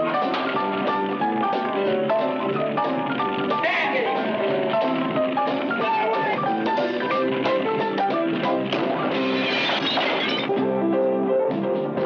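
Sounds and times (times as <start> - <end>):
guitar-led film music: 0.0 - 12.0
glass breaking: 8.7 - 10.5.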